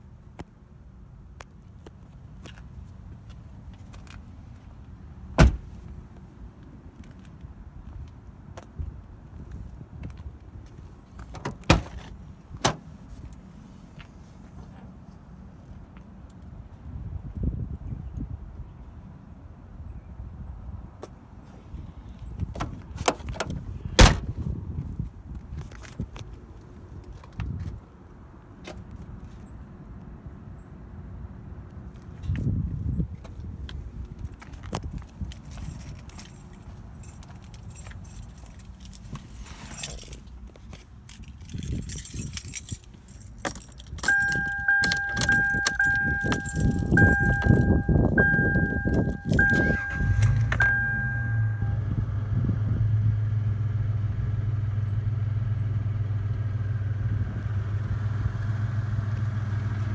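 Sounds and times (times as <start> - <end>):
clicking and rattling handling: 34.5 - 47.8
keys jangling: 35.3 - 51.3
low hum: 44.0 - 56.0.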